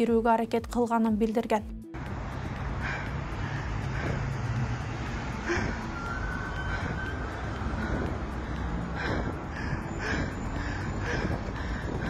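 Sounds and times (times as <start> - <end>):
low rumble of traffic: 1.9 - 12.0.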